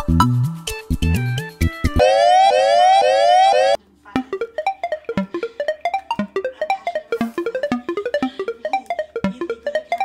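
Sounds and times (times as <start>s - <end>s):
electronic siren whoops: 2.0s - 3.8s.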